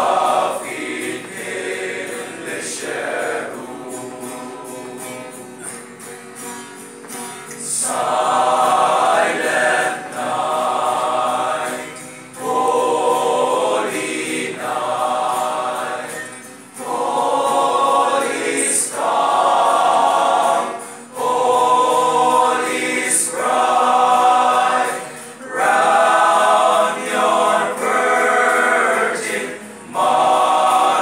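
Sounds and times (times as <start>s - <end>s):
male choir singing carol: 0.0s - 5.9s, 7.5s - 31.0s.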